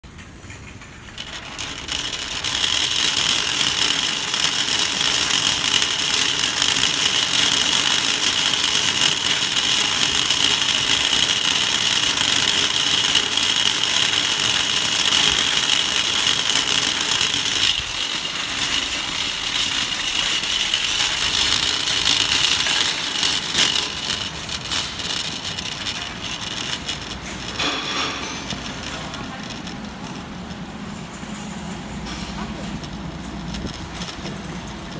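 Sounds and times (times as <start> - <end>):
shopping cart rattling over asphalt: 0.0 - 34.9.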